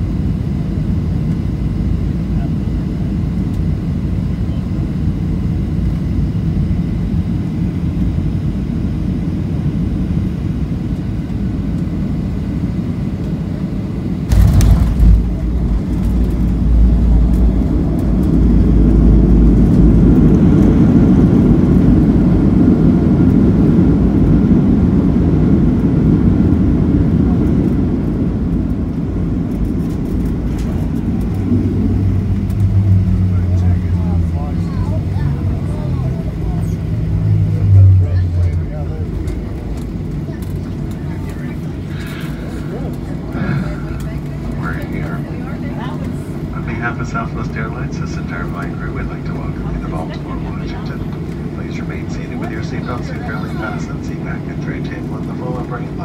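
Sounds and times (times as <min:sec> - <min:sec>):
aircraft cabin engine drone: 0:00.0 - 0:56.0
tyres rumbling on runway: 0:14.3 - 0:56.0.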